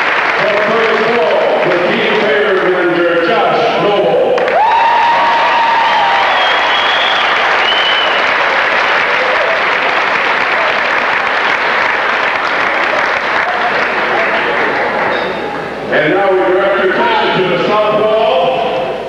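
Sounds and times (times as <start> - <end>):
crowd applauding: 0.0 - 15.8
crowd calling out: 3.2 - 16.5.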